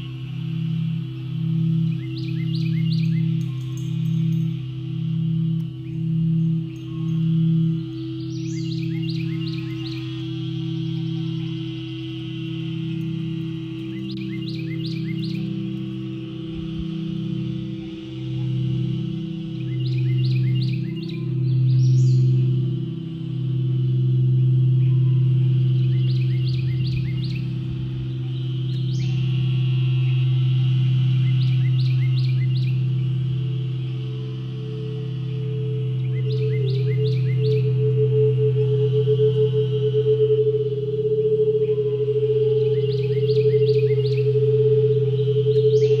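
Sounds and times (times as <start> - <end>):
crystal singing bowls ringing: 0.0 - 46.0
high background chorus: 0.0 - 46.0.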